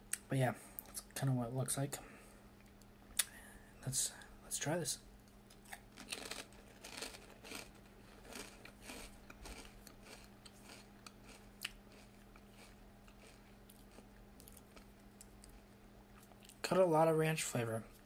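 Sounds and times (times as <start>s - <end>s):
faint steady hum: 0.0s - 18.0s
chip crunching: 5.5s - 16.6s.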